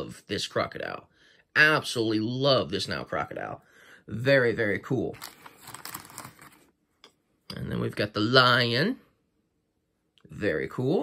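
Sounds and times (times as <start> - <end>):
plastic bag crinkling: 5.1 - 6.7.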